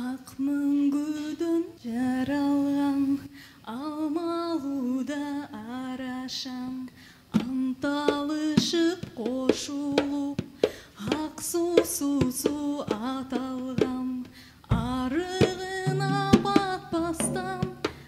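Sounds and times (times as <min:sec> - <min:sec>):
woman singing with vibrato: 0:00.0 - 0:10.4, 0:11.0 - 0:18.0
low held notes: 0:15.8 - 0:18.0
live band: 0:15.9 - 0:18.0.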